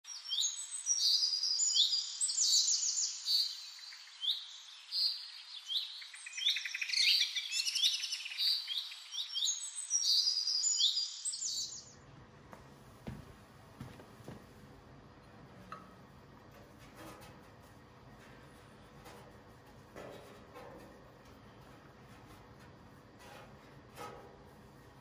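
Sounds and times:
birds chirping and trilling: 0.1 - 12.0.

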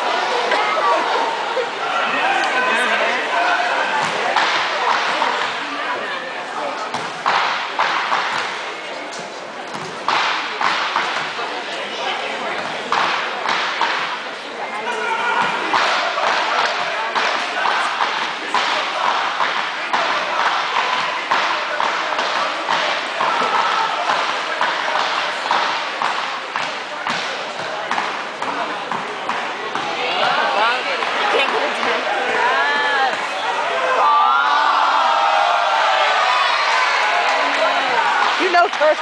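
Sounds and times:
crowd chatter: 0.0 - 39.0.

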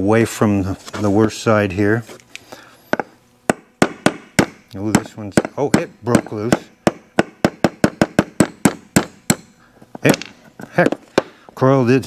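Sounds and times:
hammer tapping on steel punch: 2.9 - 11.4.

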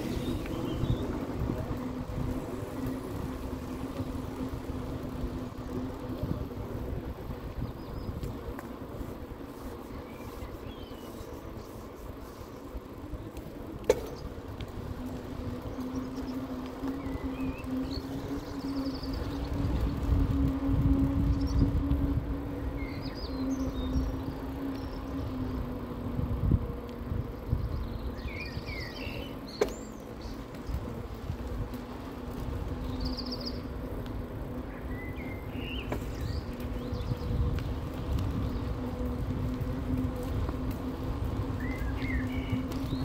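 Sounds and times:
birds chirping: 0.0 - 43.0
electric bike motor humming: 0.0 - 43.0
wind rumbling on microphone: 0.0 - 43.0.

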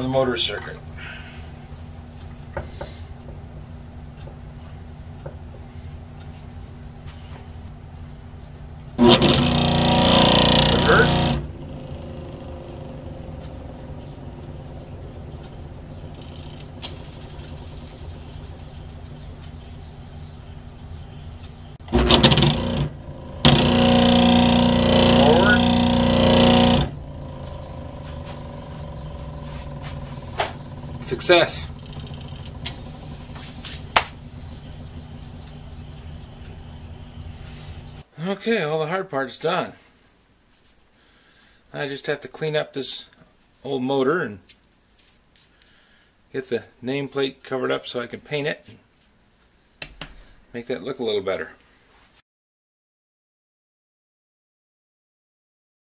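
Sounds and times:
lathe motor humming: 9.0 - 38.0.

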